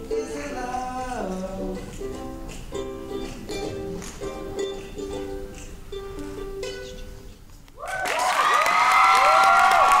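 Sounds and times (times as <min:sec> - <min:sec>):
audience clapping and cheering: 0:07.8 - 0:10.0.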